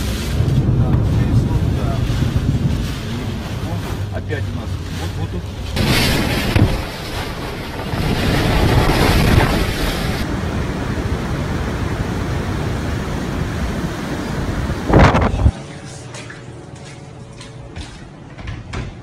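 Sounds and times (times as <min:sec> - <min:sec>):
heavy rain: 0:00.0 - 0:15.5
wind buffeting microphone: 0:00.0 - 0:15.6
rushing water: 0:00.0 - 0:16.6.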